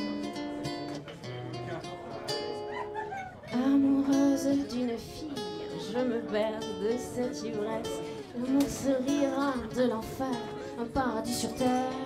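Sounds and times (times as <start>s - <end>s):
woman singing: 0.0s - 0.7s, 3.5s - 12.0s
acoustic guitar: 0.0s - 12.0s.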